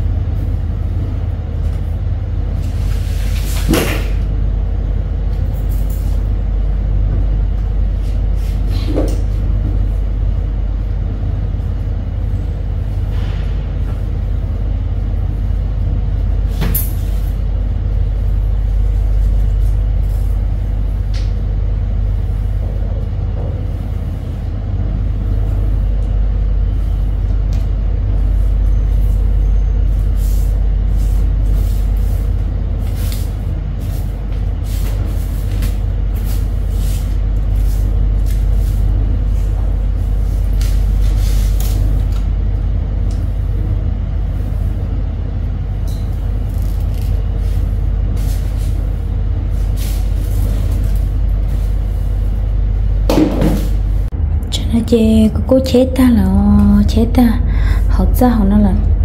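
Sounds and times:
broom sweeping tiled floor: 0.0s - 4.3s, 7.1s - 10.1s, 15.1s - 21.5s, 22.1s - 45.0s, 46.0s - 54.1s
loud low rumble: 9.2s - 59.0s.

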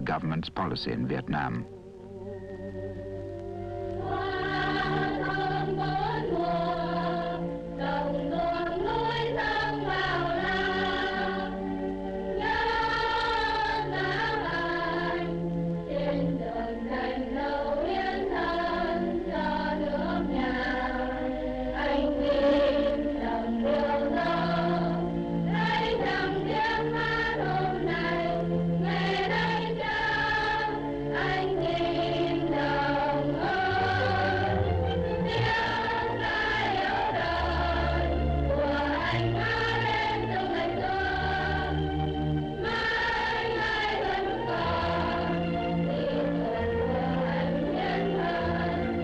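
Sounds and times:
choir singing held notes: 2.2s - 49.0s.

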